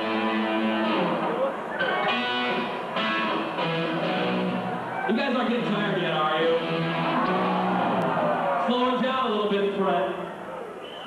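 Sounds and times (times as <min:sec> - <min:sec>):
electric guitar chords: 0:00.0 - 0:05.0, 0:06.3 - 0:08.3.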